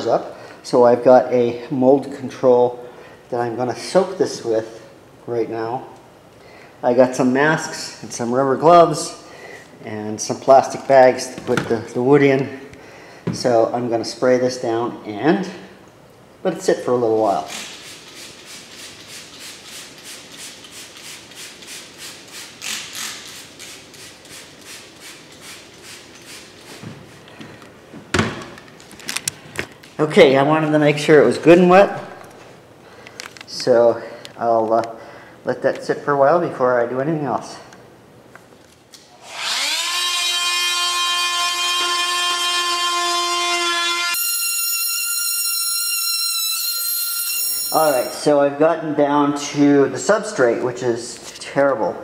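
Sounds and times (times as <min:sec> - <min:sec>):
spray bottle squirts hissing: 0:17.5 - 0:27.3
oscillating multi-tool whine: 0:39.2 - 0:48.2.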